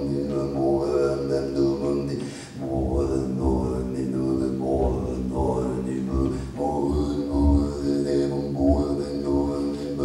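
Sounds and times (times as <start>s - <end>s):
male vocal drone: 0.0s - 10.0s.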